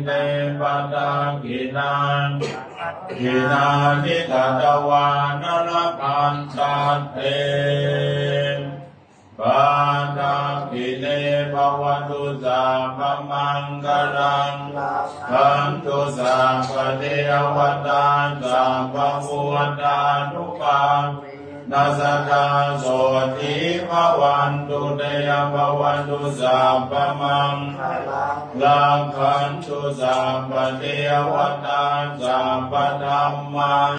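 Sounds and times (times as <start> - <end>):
monk chanting: 0.0 - 33.9.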